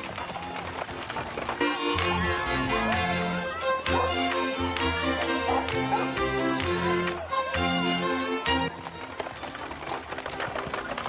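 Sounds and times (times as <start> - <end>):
cart clattering: 0.0 - 4.2, 8.7 - 11.0
horse hooves clattering: 0.0 - 11.0
music with sustained notes: 0.1 - 11.0.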